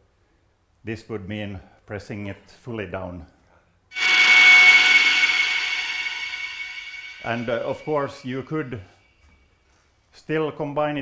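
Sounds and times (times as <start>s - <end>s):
synthesized bright note: 3.9s - 8.8s.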